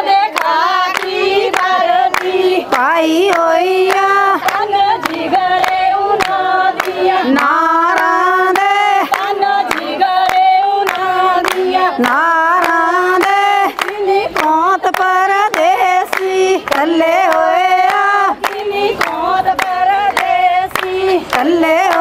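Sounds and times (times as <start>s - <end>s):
group hand-clapping: 0.0s - 22.0s
women singing folk song: 0.0s - 22.0s.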